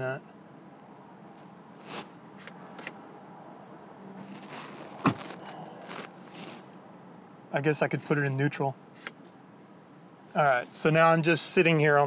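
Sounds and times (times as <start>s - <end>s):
idling truck cab hum: 0.0s - 12.0s.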